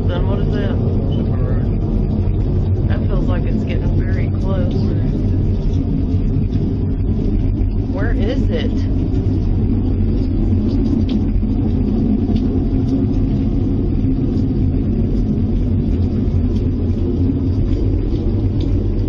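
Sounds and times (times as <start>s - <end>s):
low rumbling drone: 0.0s - 19.0s.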